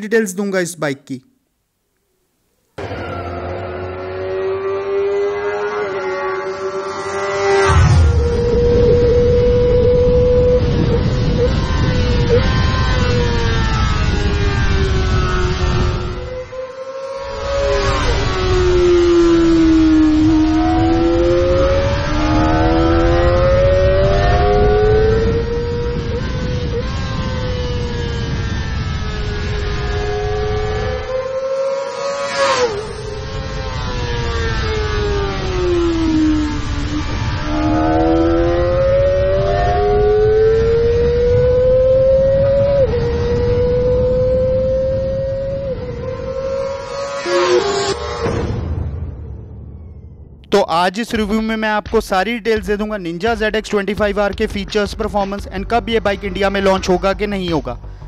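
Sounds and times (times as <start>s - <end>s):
motorcycle engine revving high: 2.8s - 48.7s.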